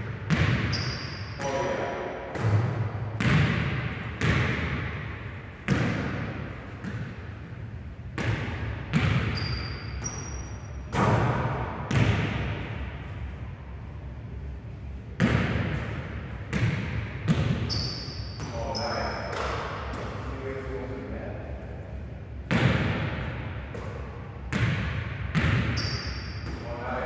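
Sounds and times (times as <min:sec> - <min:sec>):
sneakers squeaking on floor: 0:00.3 - 0:01.7, 0:08.2 - 0:11.1, 0:16.5 - 0:20.3, 0:23.7 - 0:26.8
basketball bouncing on wooden floor: 0:08.2 - 0:10.4, 0:16.5 - 0:18.5, 0:24.5 - 0:26.6.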